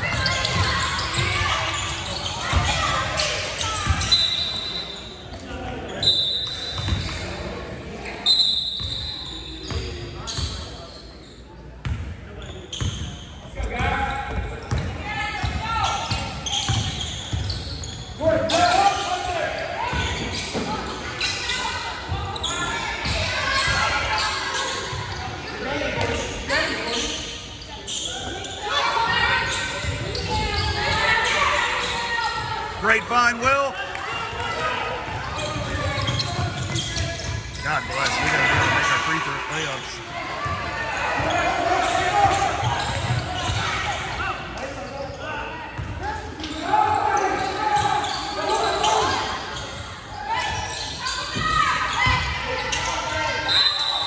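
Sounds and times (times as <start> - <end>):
murmur of voices: 0.0 - 54.0.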